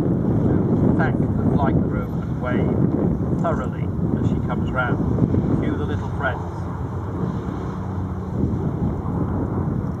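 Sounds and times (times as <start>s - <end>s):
radial aircraft engines rumbling: 0.0s - 10.0s.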